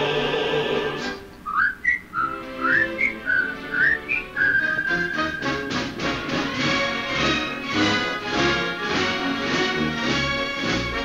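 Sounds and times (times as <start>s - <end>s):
musical backing: 0.0s - 11.0s
whistled tune: 1.1s - 8.0s.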